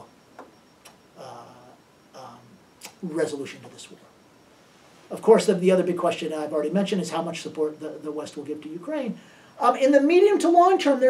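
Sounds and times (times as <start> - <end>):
faint clicks: 0.4 - 1.0.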